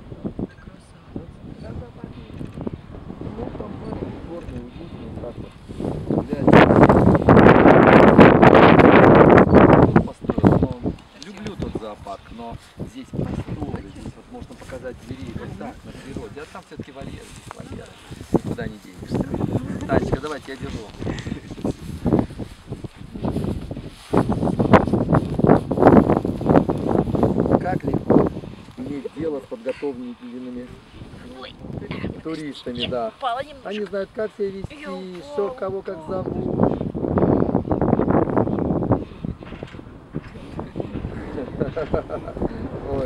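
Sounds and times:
gusty wind buffeting microphone: 0.0s - 43.0s.

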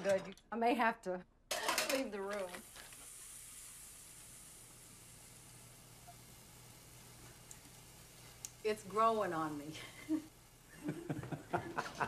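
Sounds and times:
cutlets sizzling in a pan: 1.5s - 11.6s.

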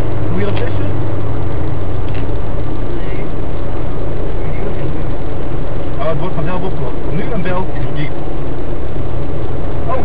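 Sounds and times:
car interior road noise: 0.0s - 10.0s.

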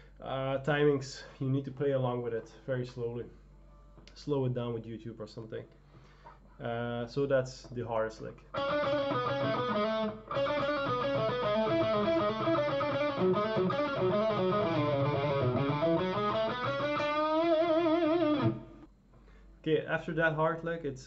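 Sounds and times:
electric guitar lead lick: 8.5s - 18.9s.

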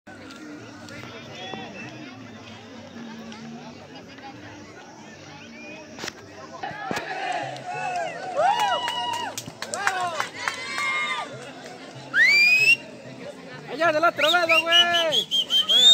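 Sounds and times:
whistle rising in pitch: 12.1s - 12.8s, 14.2s - 15.9s.

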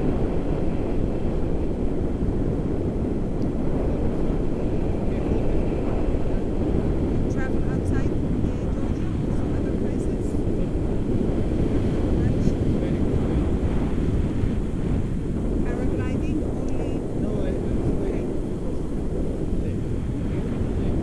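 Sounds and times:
wind rushing over microphone: 0.0s - 21.0s.

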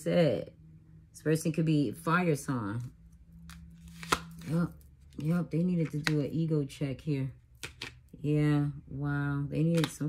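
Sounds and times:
cards rustling: 3.4s - 6.2s
card snapping: 3.5s - 4.5s.

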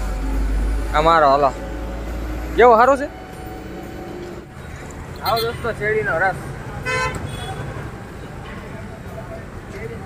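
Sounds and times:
street traffic rumble: 0.0s - 10.0s
vehicle horn toot: 5.2s - 5.8s, 6.8s - 7.7s.

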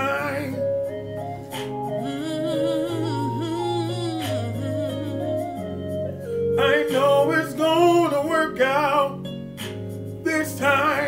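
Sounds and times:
wavering gospel singing: 0.0s - 5.4s, 6.6s - 9.2s, 10.2s - 11.0s
low instrumental backing: 0.0s - 11.0s.

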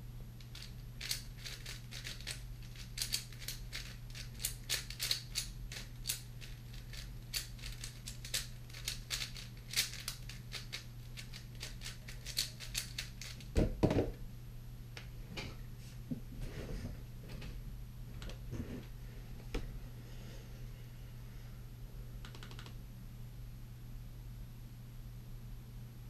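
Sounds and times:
puzzle cube clicking: 0.6s - 6.2s.

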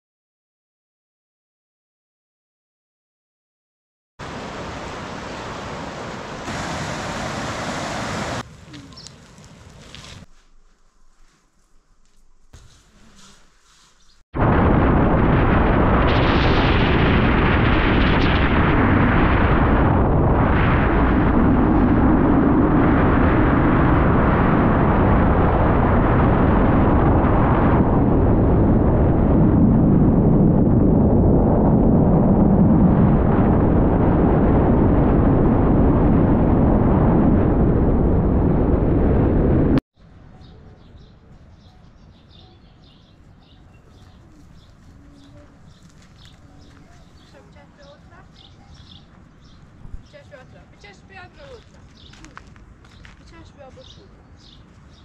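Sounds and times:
road noise: 4.2s - 13.8s
wind buffeting microphone: 14.4s - 39.8s, 40.9s - 55.0s.

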